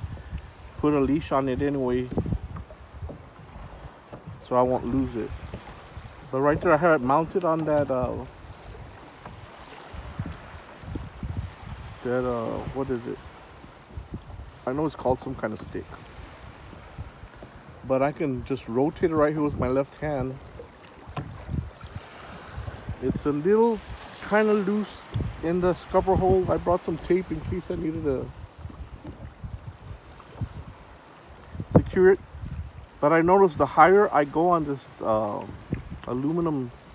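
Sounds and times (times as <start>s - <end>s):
water slapping against kayak hull: 0.0s - 36.9s
wind buffeting microphone: 0.0s - 36.9s.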